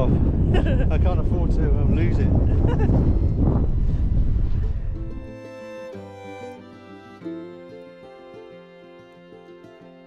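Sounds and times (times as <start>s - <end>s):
wind buffeting microphone: 0.0s - 5.4s
plucked string notes: 4.6s - 10.0s
strings holding sustained notes: 4.6s - 10.0s.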